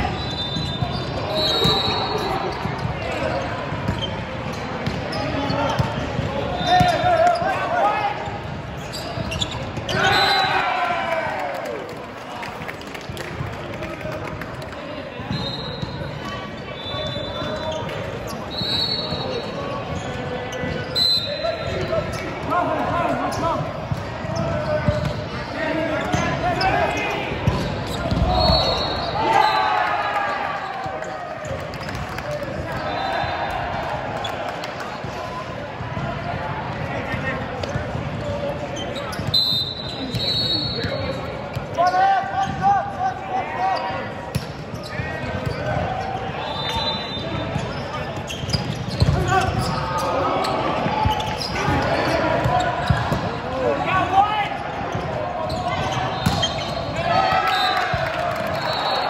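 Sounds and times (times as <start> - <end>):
shoes squeaking on court floor: 0.0 - 10.5, 15.2 - 33.4, 36.7 - 59.0
players shouting and calling: 0.0 - 12.6, 13.8 - 59.0.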